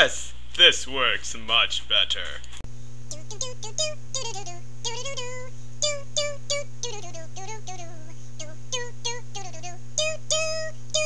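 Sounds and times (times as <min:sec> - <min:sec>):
steady low hum: 0:00.0 - 0:11.0
high voice singing doo syllables: 0:03.1 - 0:11.0.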